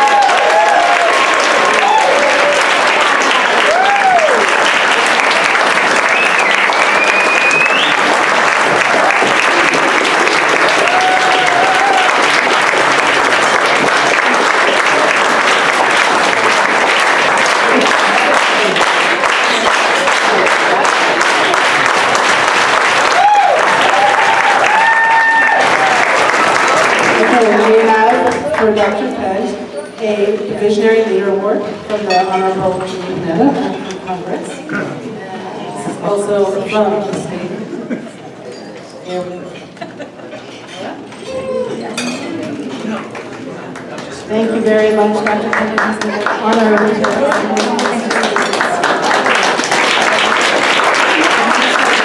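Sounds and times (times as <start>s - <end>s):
crowd applauding: 0.0s - 28.9s, 42.5s - 52.0s.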